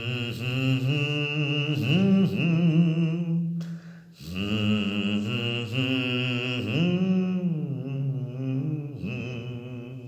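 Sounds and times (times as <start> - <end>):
breath: 3.6 - 4.2.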